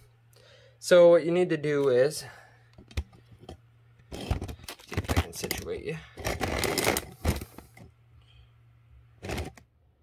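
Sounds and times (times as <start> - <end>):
rustling and scraping handling noise: 2.8 - 7.9, 9.2 - 9.7.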